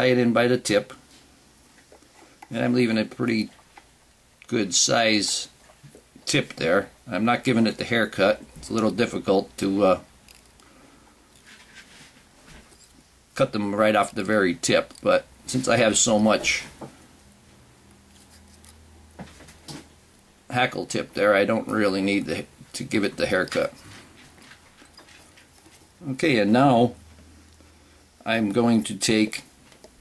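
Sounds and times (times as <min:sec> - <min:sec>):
soft scratches: 0:11.4 - 0:13.1, 0:18.1 - 0:19.9
fingers rustling: 0:17.8 - 0:19.8.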